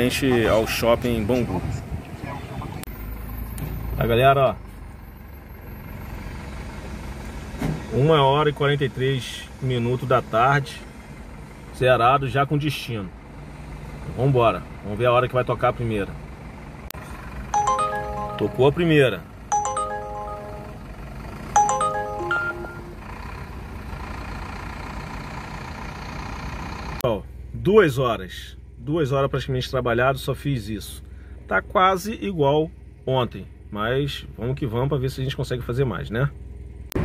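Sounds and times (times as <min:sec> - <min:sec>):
car engine rumble: 0:00.0 - 0:37.0
surrounding traffic: 0:00.0 - 0:37.0
phone alert chime: 0:17.6 - 0:21.0, 0:21.6 - 0:23.0.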